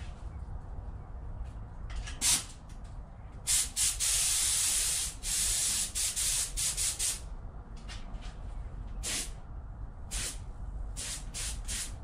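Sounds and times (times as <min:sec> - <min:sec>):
paint spray gun hissing: 0:03.5 - 0:07.2, 0:11.0 - 0:12.0.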